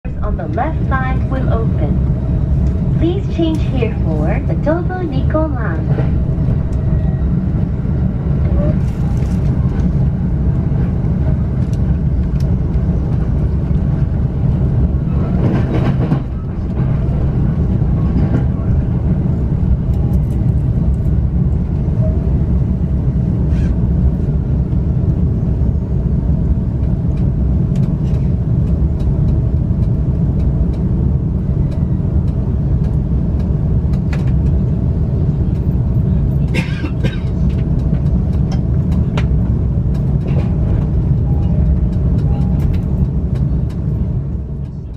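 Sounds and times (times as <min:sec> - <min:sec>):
train running gear rumble: 0:00.0 - 0:44.9.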